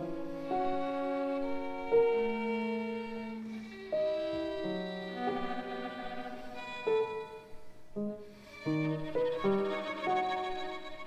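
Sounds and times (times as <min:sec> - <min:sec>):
quiet chamber music piano trio: 0:00.0 - 0:11.0.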